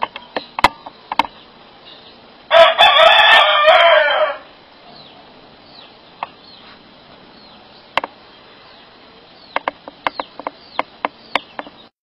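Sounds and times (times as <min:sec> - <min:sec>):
rooster crowing: 0:02.5 - 0:04.6.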